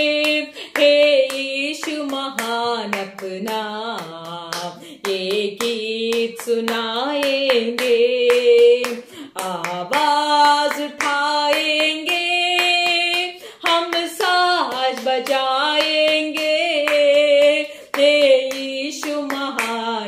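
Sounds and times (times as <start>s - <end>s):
hands clapping: 0.0s - 20.0s
woman singing: 0.0s - 20.0s.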